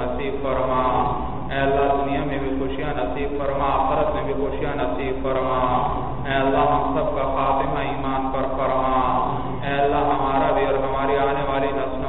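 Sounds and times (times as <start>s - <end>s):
person chanting melodically: 0.0s - 12.0s.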